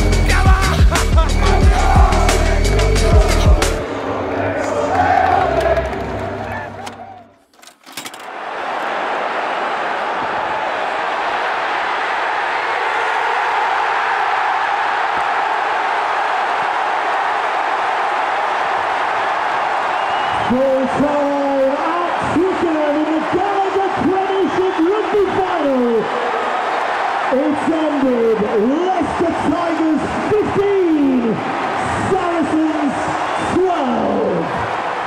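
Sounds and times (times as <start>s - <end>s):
music with a beat: 0.0s - 3.8s
stadium crowd noise: 0.0s - 35.0s.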